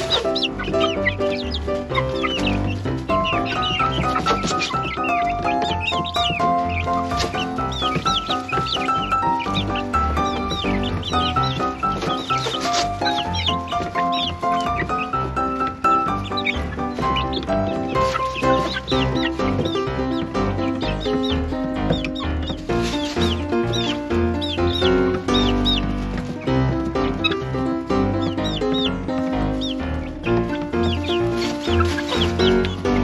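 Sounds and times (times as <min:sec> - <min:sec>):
background music with low beat: 0:00.0 - 0:33.0
chicks calling: 0:00.0 - 0:33.0.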